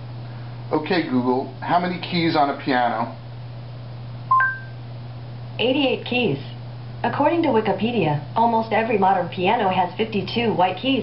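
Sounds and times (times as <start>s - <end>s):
steady low hum: 0.0s - 11.0s
two-note electronic chime: 4.3s - 4.7s.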